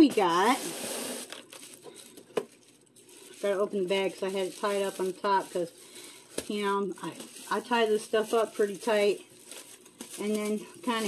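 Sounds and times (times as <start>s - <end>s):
plastic bag rustling: 0.0s - 11.0s.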